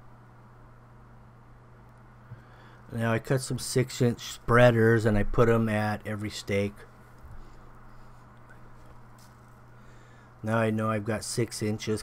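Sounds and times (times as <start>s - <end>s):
low electrical hum: 0.0s - 12.0s
light hiss: 6.8s - 10.6s.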